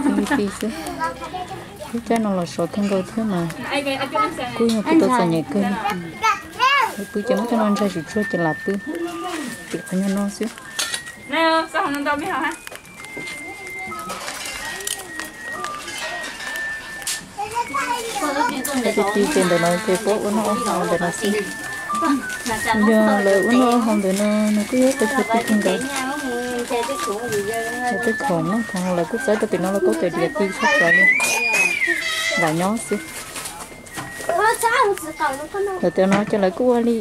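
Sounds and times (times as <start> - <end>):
children chattering: 0.0 - 37.0
people talking: 0.0 - 37.0.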